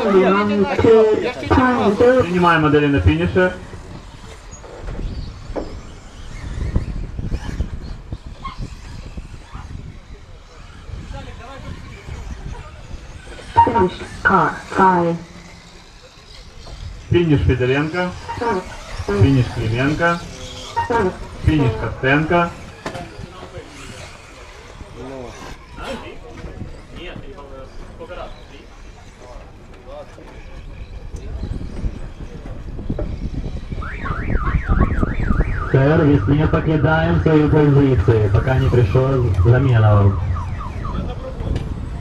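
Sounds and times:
race announcer's voice: 0:00.0 - 0:03.8, 0:13.5 - 0:15.5, 0:17.1 - 0:22.7, 0:35.6 - 0:41.5
rc buggies running on dirt: 0:00.0 - 0:33.8, 0:40.7 - 0:42.0
warbling electronic siren: 0:13.5 - 0:15.9, 0:17.1 - 0:22.6, 0:33.8 - 0:42.0
low rumbling noise: 0:35.7 - 0:42.0.

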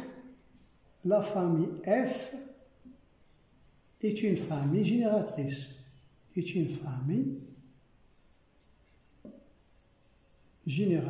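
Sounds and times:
marker pen writing on a board: 0:07.0 - 0:11.0.

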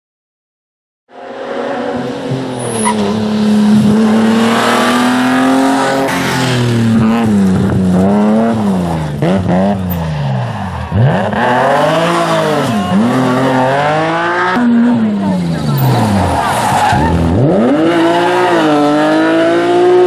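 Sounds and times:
rally car engine revving: 0:01.2 - 0:20.0.

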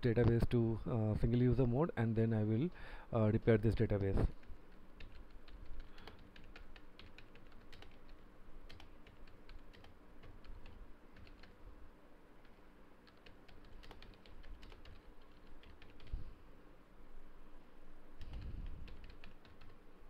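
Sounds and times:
typing on computer keyboard: 0:04.0 - 0:11.6, 0:12.4 - 0:16.2, 0:18.2 - 0:19.8.

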